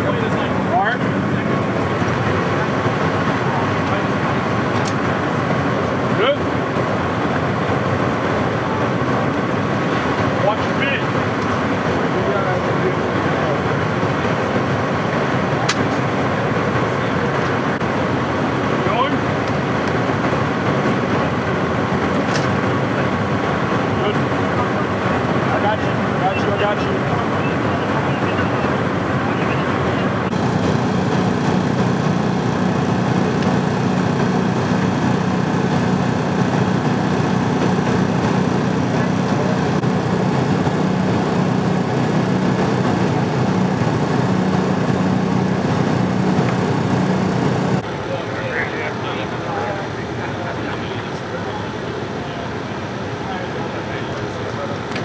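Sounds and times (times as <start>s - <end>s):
indistinct voices: 0.0s - 55.0s
vehicle engines idling: 0.0s - 55.0s
low hum: 17.8s - 48.0s.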